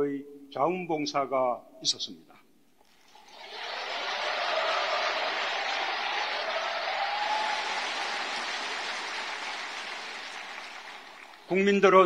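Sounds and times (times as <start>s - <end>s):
large crowd applauding: 3.1s - 12.0s.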